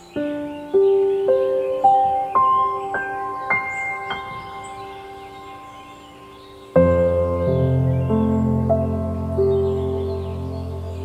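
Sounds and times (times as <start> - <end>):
soft solo piano: 0.0 - 11.0.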